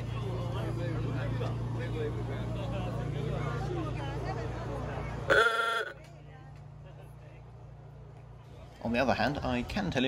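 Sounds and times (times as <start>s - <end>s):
vehicle horn honk: 5.3s - 6.0s.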